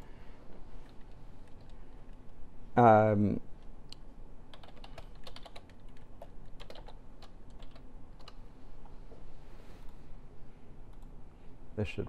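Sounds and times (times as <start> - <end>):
typing on computer keyboard: 4.5 - 8.4.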